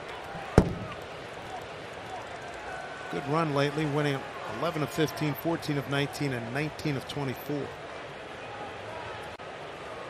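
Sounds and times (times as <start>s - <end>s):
ballpark crowd hum: 0.0s - 10.0s
baseball smacking into mitt: 0.5s - 1.0s.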